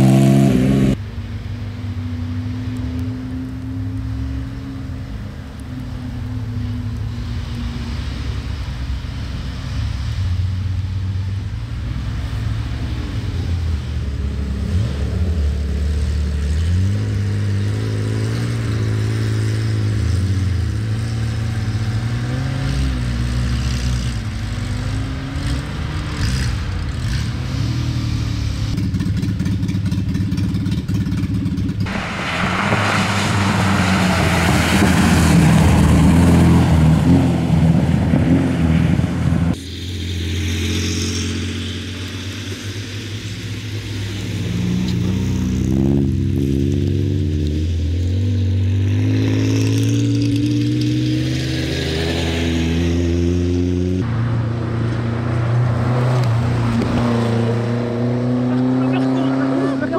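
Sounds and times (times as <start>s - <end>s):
rally car engines revving: 0.0s - 59.9s.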